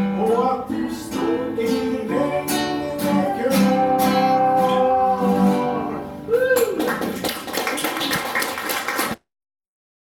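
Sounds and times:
people clapping: 0:06.3 - 0:09.2.

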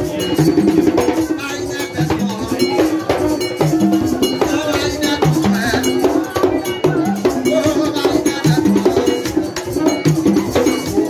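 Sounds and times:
hand drums: 0:00.0 - 0:11.0.

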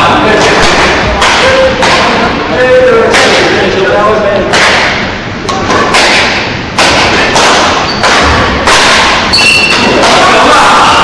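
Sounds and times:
rackets hitting shuttlecock: 0:00.3 - 0:02.2, 0:04.5 - 0:10.4
shoe squeak: 0:07.8 - 0:08.0, 0:09.3 - 0:09.9.

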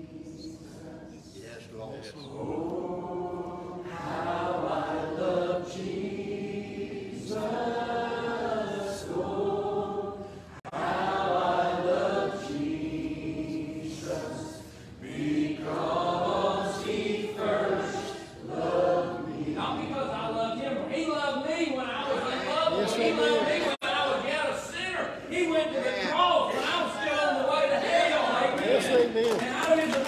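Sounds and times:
congregation and choir singing hymn: 0:00.0 - 0:24.2.

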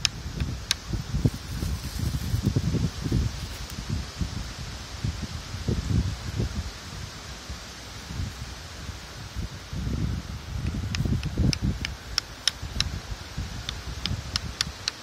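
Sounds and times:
leaves and twigs rustling: 0:00.0 - 0:15.0
wind buffeting microphone: 0:00.0 - 0:15.0.

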